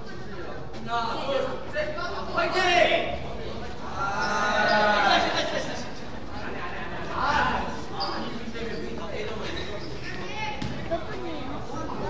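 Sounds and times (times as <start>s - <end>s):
voices in a hall: 0.0s - 12.0s
basketball bouncing on gym floor: 10.6s - 10.9s.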